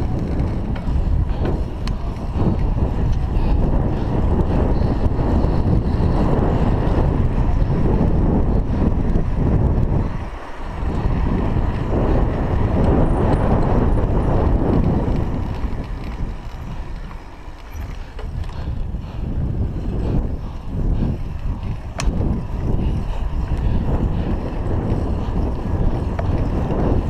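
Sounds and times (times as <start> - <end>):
wind rushing over microphone: 0.0 - 27.0.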